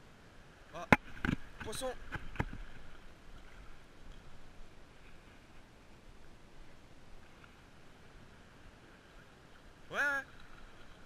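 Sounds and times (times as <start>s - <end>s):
seawater lapping: 0.4s - 11.0s.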